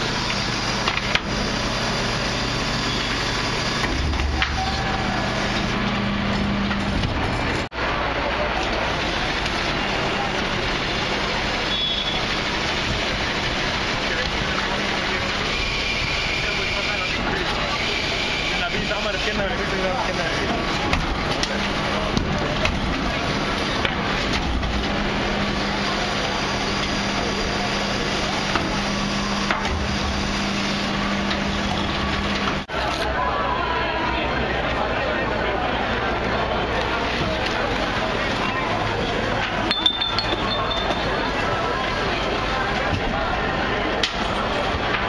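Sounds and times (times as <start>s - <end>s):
truck engine low hum: 0.0s - 18.5s, 19.2s - 33.1s
hydraulic bin lifter: 0.0s - 33.1s, 35.8s - 45.0s
high squeal: 1.6s - 5.7s, 15.4s - 19.0s.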